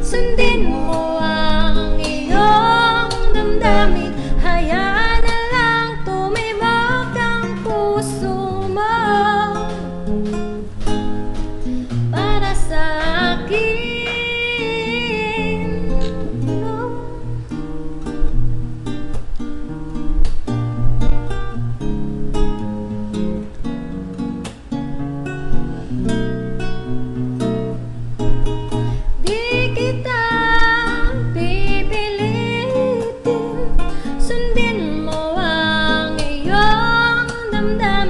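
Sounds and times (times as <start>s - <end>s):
woman singing wordless notes: 0.0s - 10.6s, 11.8s - 17.5s, 29.1s - 38.0s
acoustic guitar plucked chords: 0.0s - 38.0s.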